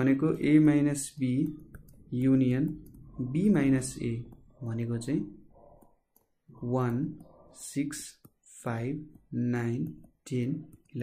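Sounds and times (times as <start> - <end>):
man speaking: 0.0 - 5.4, 6.5 - 11.0.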